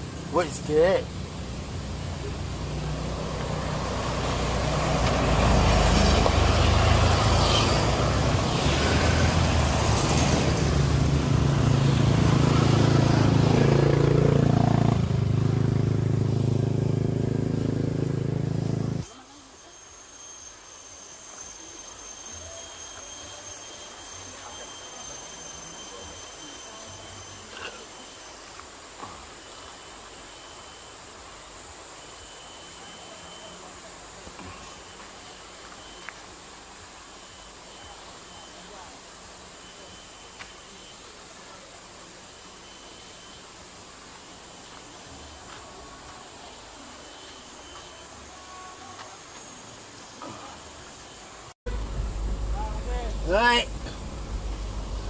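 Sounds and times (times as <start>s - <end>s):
high-pitched insect drones: 0.0s - 55.0s
loud low rumble: 51.7s - 55.0s.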